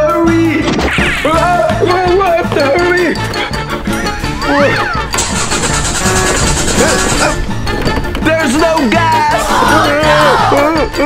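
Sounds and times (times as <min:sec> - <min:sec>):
upbeat background music: 0:00.0 - 0:11.0
motor scooter engine running: 0:05.1 - 0:07.5.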